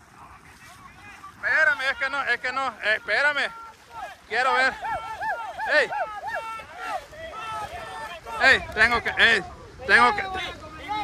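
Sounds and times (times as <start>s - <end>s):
men shouting excitedly: 0.6s - 11.0s
loud cry: 2.8s - 8.5s.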